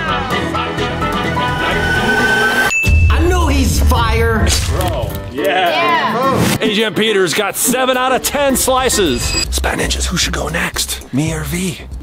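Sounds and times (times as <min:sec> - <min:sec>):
background music: 0:00.0 - 0:12.0
man speaking: 0:03.1 - 0:05.0.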